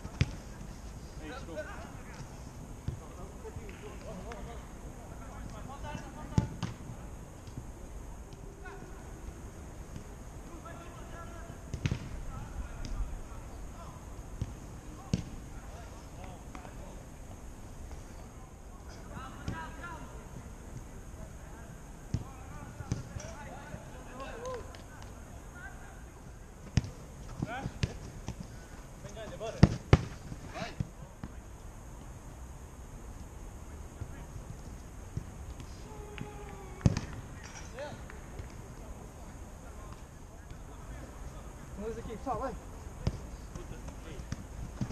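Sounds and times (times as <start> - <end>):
football being kicked: 11.7 - 12.1, 26.6 - 28.5, 29.3 - 31.4, 36.8 - 37.1
players shouting: 35.7 - 37.2.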